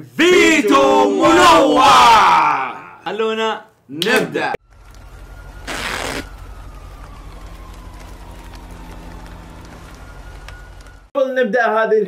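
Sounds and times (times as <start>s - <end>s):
rain hissing: 4.6s - 11.1s.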